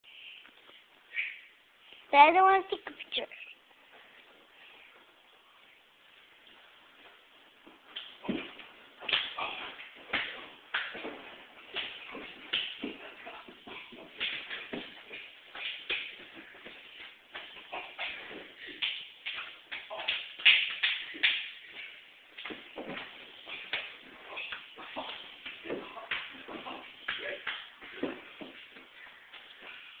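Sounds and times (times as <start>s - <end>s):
feet shuffling: 3.7s - 20.1s, 21.1s - 30.0s
people scuffling: 6.4s - 30.0s
bodies thumping on floor: 7.6s - 29.8s.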